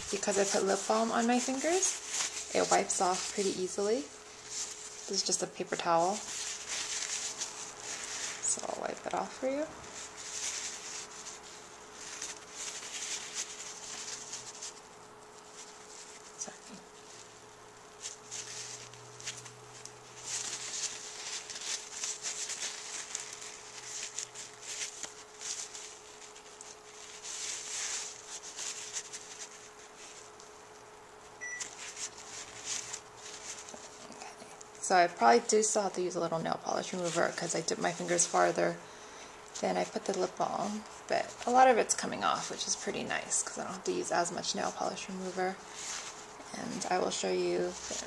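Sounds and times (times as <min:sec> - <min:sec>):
faint steady hum: 0:00.0 - 0:48.0
paper towel scrubbing rustles: 0:00.0 - 0:48.0.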